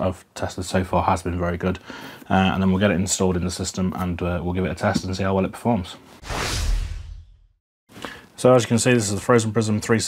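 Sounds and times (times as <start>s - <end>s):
rushing whoosh: 6.2s - 7.5s.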